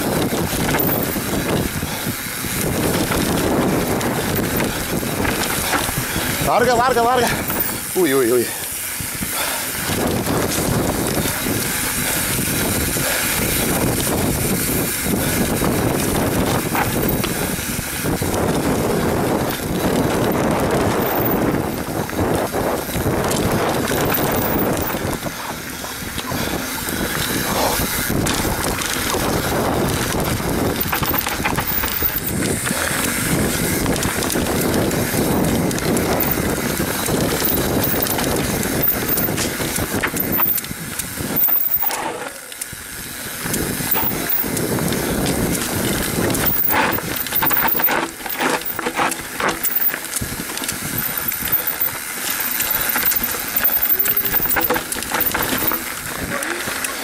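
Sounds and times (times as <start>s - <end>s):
bike clattering over bumps: 0.0s - 57.0s
bike tyres on dirt: 0.0s - 57.0s
wind rushing over microphone: 0.0s - 57.0s.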